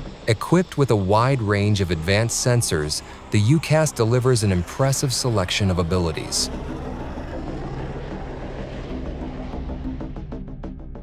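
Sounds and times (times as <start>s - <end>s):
jet engine on takeoff roll: 0.0s - 11.0s.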